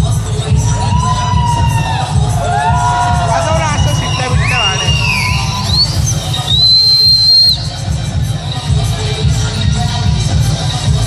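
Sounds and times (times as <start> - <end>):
dance music with bass beat: 0.0 - 11.0
person whistling loudly: 3.4 - 7.7.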